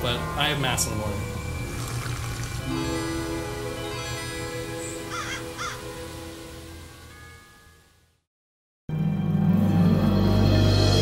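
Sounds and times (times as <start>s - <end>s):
held music underscore: 0.0s - 6.2s
crow cawing: 2.9s - 5.9s.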